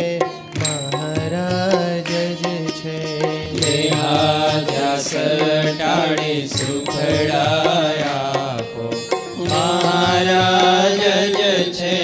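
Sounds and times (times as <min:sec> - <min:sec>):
devotional chanting: 0:00.0 - 0:12.0
instrumental accompaniment: 0:00.0 - 0:12.0.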